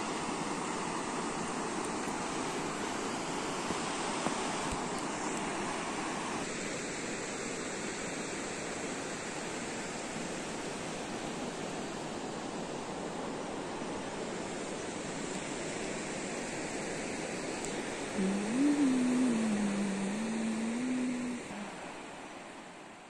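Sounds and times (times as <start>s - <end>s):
river flowing: 0.0s - 23.0s.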